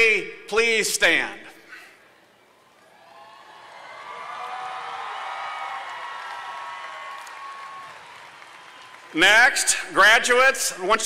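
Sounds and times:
crowd cheering and clapping: 0:02.7 - 0:09.7.

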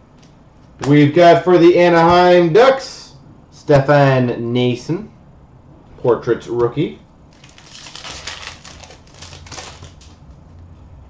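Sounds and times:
wrapper crinkling as torn open: 0:07.3 - 0:10.2
cards being handled: 0:07.4 - 0:10.2.

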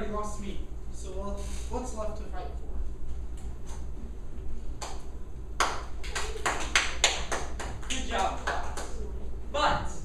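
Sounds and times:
rapid hand claps: 0:04.8 - 0:05.0, 0:05.6 - 0:09.0.

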